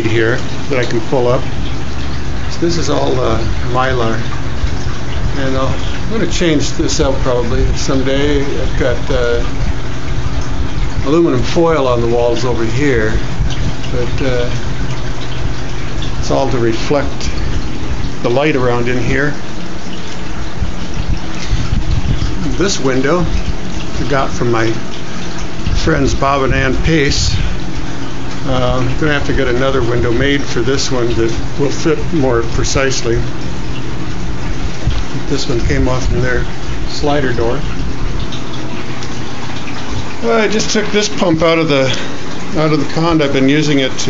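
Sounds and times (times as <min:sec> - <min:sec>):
running water rushing: 0:00.0 - 0:44.0.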